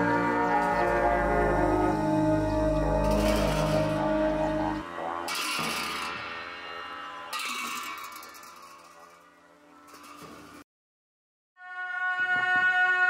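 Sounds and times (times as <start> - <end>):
long horns droning low: 0.0 - 7.3.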